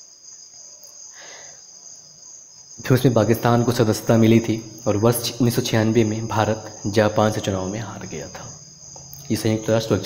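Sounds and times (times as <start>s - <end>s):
faint high-pitched whine: 0.0s - 10.0s
soft breath: 1.0s - 1.8s.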